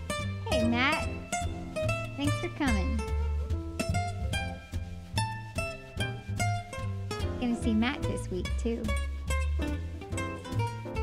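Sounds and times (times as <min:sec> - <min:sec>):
guitar plucked notes: 0:00.0 - 0:11.0.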